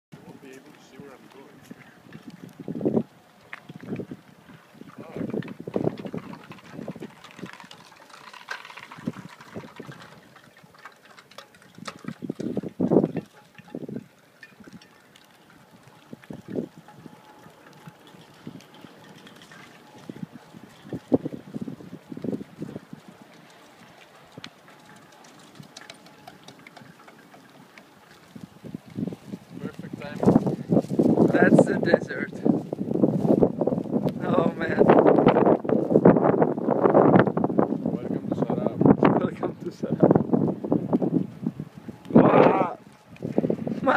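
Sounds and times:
wind blowing against microphone: 0.2 - 43.9
small ticks and clicks: 0.4 - 31.3.

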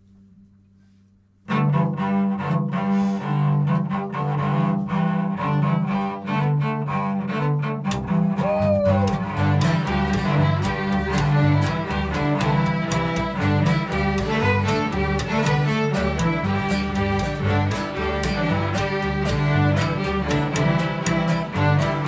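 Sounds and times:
cellos: 0.0 - 22.0
double bass: 0.0 - 22.0
string band fiddle tune: 1.5 - 22.0.

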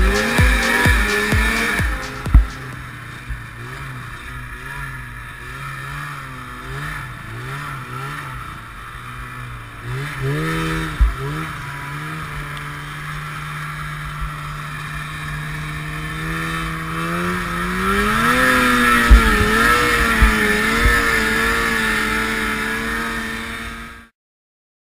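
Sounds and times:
snowmobile engine running: 0.0 - 24.1.

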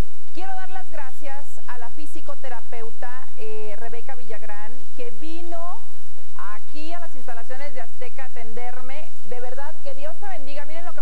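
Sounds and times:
steady hiss: 0.0 - 11.0
woman speaking: 0.4 - 11.0.

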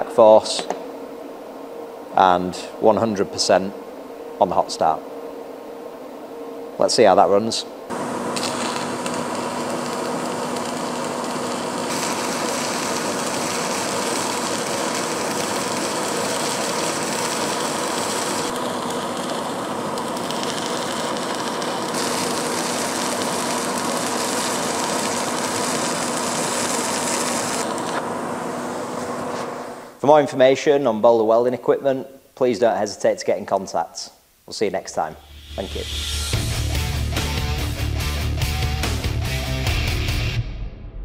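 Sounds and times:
welding arc sizzling: 6.8 - 30.0, 35.0 - 38.2.

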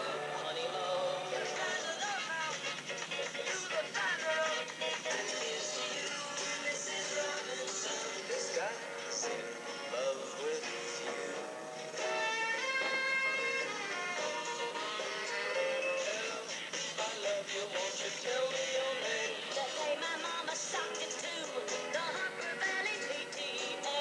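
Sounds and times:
pop songs playing: 0.0 - 24.0.

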